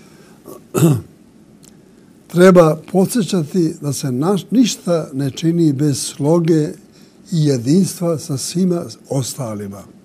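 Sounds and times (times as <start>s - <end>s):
elderly man clearing throat: 0.4s - 1.1s.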